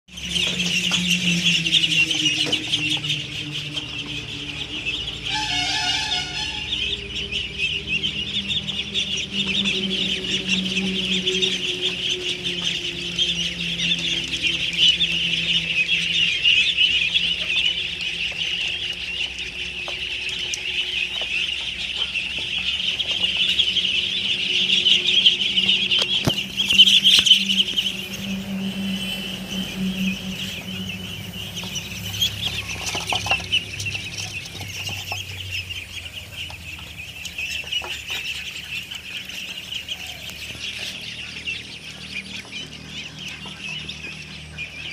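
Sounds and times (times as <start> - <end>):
ducklings peeping: 0.1 - 44.9.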